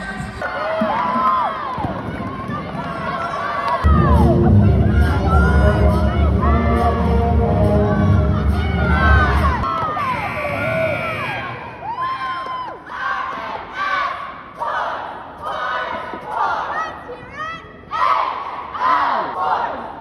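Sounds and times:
cheerleaders shouting in unison: 0.3s - 20.0s.

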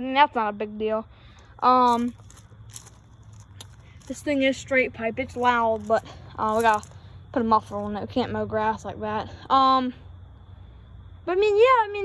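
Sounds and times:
low steady hum: 0.0s - 12.0s
footsteps on gravel: 1.3s - 8.0s.

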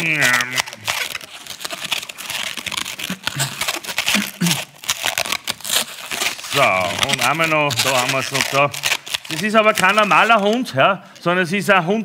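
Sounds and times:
balloon squeaking as twisted: 0.0s - 11.4s.

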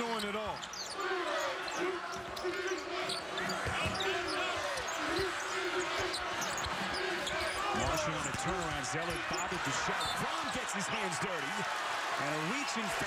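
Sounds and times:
sneakers squeaking: 0.0s - 10.8s
arena crowd hum: 0.0s - 13.0s.

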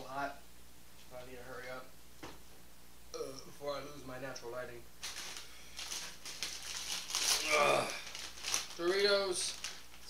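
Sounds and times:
foil snack bag crinkling: 5.0s - 10.0s.

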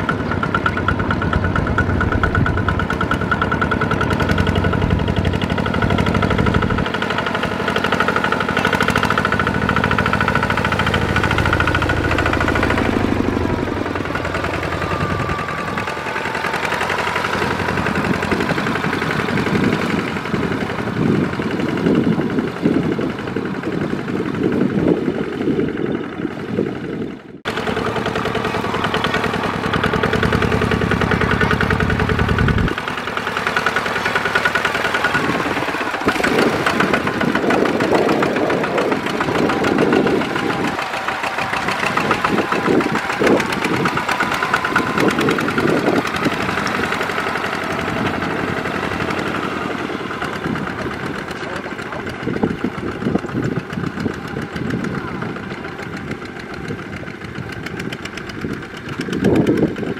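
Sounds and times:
diesel tractor engines running: 0.0s - 59.9s.

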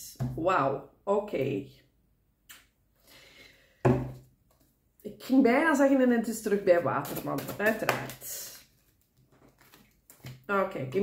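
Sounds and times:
card deck rustling: 6.9s - 10.4s.

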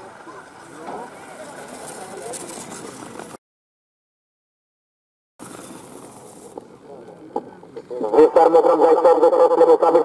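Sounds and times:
distant people talking and calling: 0.0s - 3.4s.

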